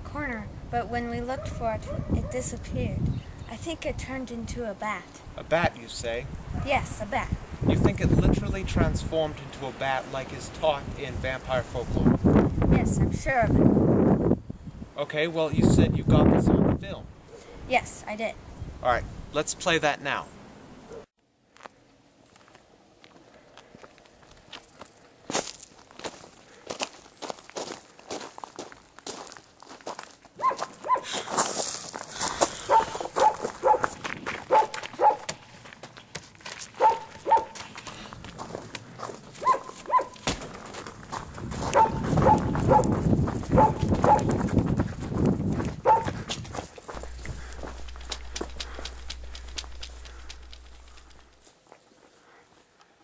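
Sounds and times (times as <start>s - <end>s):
footsteps: 21.5s - 52.2s
dog barking in short yaps: 30.4s - 31.1s, 34.5s - 35.3s, 36.8s - 37.6s, 39.4s - 40.2s, 41.8s - 42.9s, 45.9s - 46.1s.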